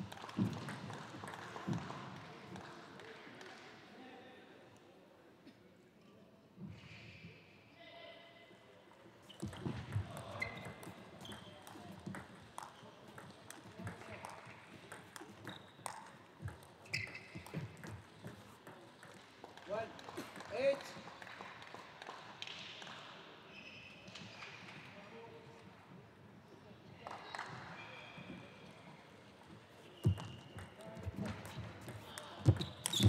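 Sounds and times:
table tennis ball rally: 0:09.3 - 0:20.4.

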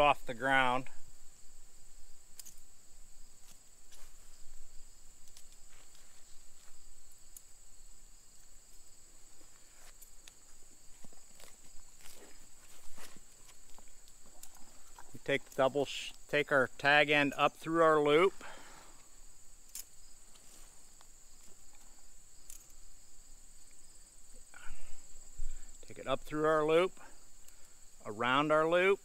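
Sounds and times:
crickets chirping: 0:00.0 - 0:29.0
rope rustling and tapping: 0:05.2 - 0:07.5, 0:08.4 - 0:15.7.

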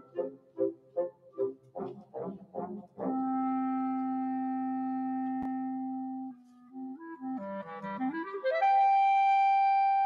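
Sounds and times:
wind ensemble playing: 0:00.0 - 0:10.0.

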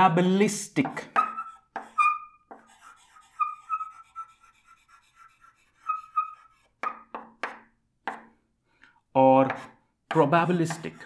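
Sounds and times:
chalk tapping on board: 0:00.8 - 0:08.4, 0:09.4 - 0:11.0
chalk squeaking on chalkboard: 0:01.1 - 0:08.3, 0:09.5 - 0:11.0.

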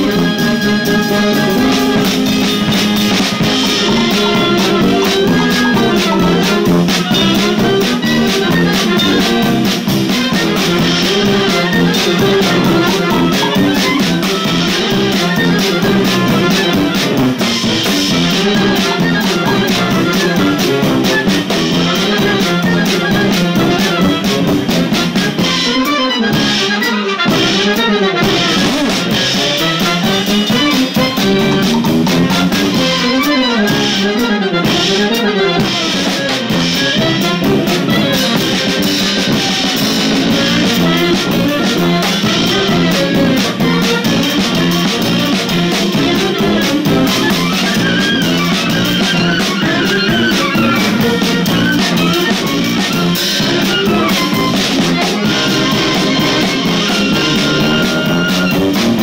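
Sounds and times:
brass band playing: 0:00.0 - 0:59.0
drums: 0:00.0 - 0:59.0
sousaphone bass line: 0:00.0 - 0:59.0.

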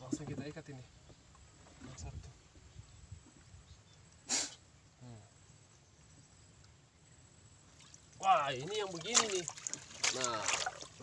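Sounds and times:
man snorting through nose: 0:04.2 - 0:04.6.

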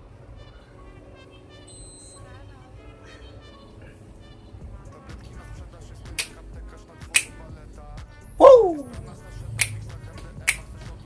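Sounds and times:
quiet rap music: 0:00.0 - 0:11.0.

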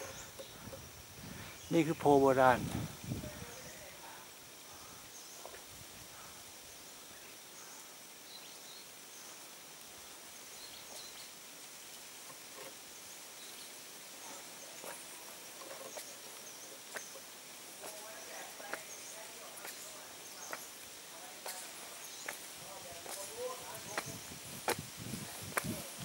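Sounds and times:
steady high hiss: 0:00.0 - 0:26.0.

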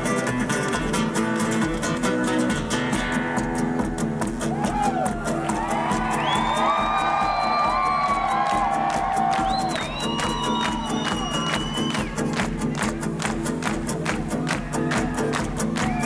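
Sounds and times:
acoustic guitars playing: 0:00.0 - 0:16.0
percussive strumming beat: 0:00.0 - 0:16.0
crowd cheering and whistling: 0:04.4 - 0:12.9, 0:14.4 - 0:16.0.

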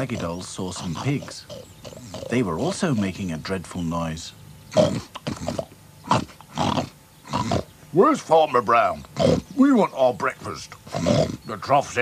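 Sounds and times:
cartoon pig grunts: 0:00.0 - 0:02.8, 0:04.7 - 0:07.7, 0:09.0 - 0:09.6, 0:10.8 - 0:11.5.

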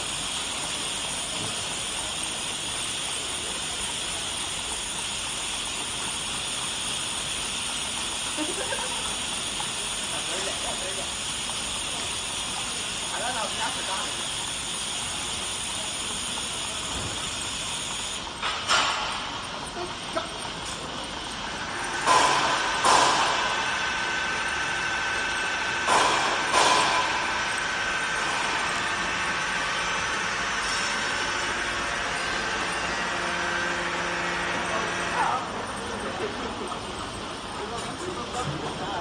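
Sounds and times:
filling machine running: 0:00.0 - 0:39.0.

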